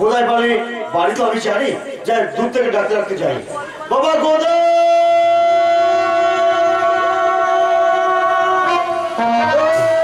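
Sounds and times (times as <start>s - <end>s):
long held instrument note: 5.2s - 10.0s.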